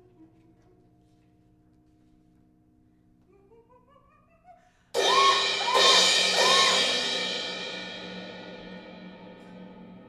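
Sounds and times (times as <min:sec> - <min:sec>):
suspended cymbal crash ringing: 0:05.0 - 0:10.0.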